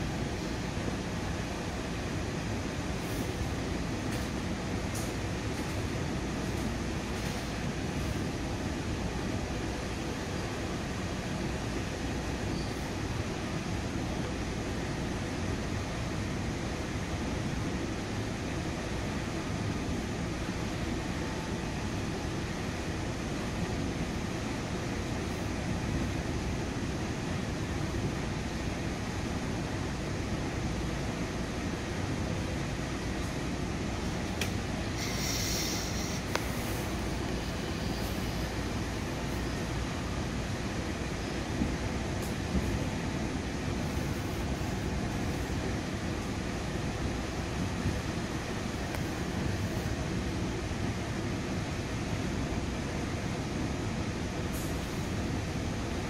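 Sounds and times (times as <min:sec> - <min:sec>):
train wheels rolling on rails: 0:00.0 - 0:56.0.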